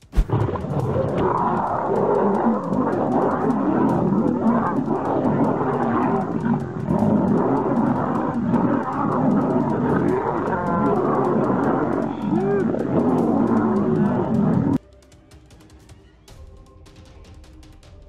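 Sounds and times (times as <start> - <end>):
lions snarling and growling: 0.0 - 14.8.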